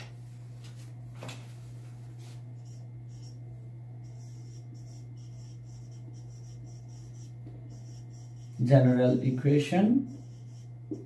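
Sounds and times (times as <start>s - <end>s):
steady low hum: 0.0s - 11.0s
marker pen writing on whiteboard: 4.1s - 9.0s, 10.1s - 11.0s.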